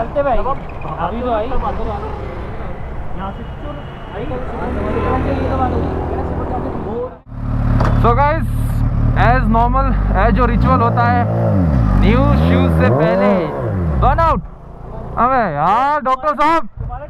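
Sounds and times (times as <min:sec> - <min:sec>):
motorcycle engine idling and revving: 0:00.0 - 0:03.4, 0:04.3 - 0:15.7
men talking: 0:00.0 - 0:07.3, 0:07.9 - 0:17.0.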